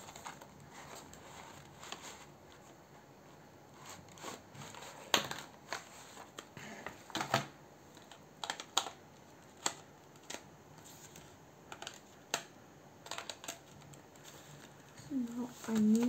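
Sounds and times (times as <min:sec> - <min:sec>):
crayons clicking in cardboard box: 0:04.1 - 0:16.0.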